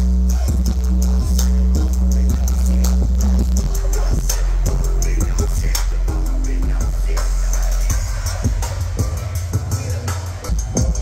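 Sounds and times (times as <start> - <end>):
club dance music with heavy bass: 0.0 - 11.0.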